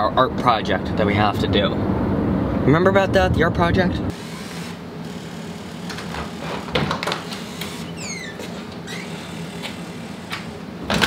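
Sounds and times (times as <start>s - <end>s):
door opening and shutting: 5.8s - 11.0s
short falling squeak: 7.7s - 9.4s.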